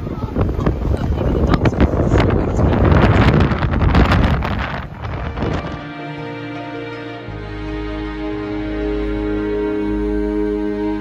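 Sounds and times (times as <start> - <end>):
wind buffeting microphone: 0.0 - 6.0.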